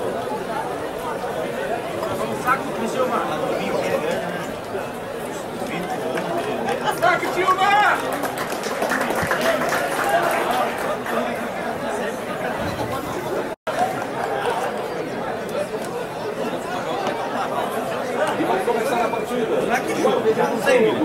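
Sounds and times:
crowd chattering: 0.0 - 21.0.

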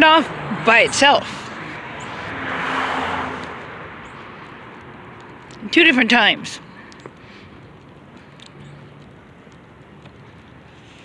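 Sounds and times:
vehicle passing: 0.0 - 11.0.

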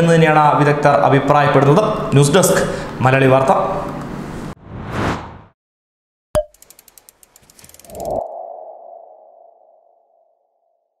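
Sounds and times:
sharp ticks: 6.4 - 8.2.

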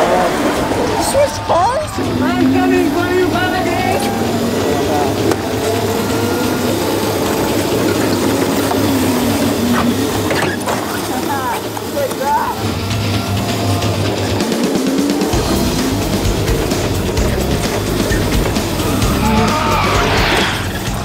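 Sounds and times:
electric go-kart motors whining: 0.0 - 21.0
people shouting: 0.0 - 21.0.

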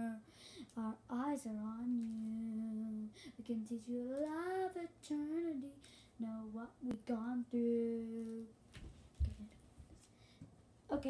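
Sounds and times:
girl singing unaccompanied: 0.0 - 8.6.

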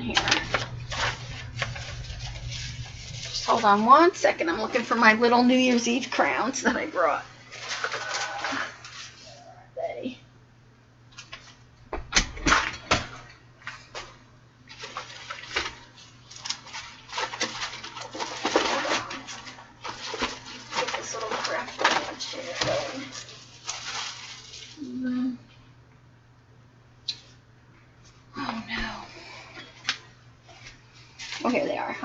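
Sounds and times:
rustling: 0.0 - 5.0, 7.4 - 9.4, 14.7 - 25.1, 30.4 - 31.8.

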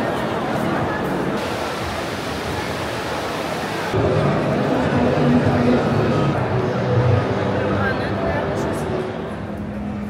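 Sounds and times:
faint crowd chatter: 0.0 - 10.0
waterfall rushing hiss: 1.4 - 4.0.

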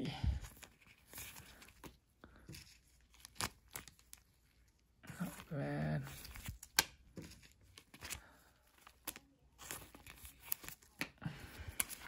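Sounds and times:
plastic sleeve crinkling: 0.5 - 12.0.

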